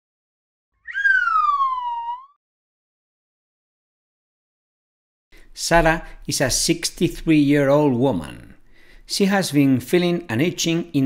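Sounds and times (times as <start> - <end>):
gliding pitched tone: 0.9 - 2.4.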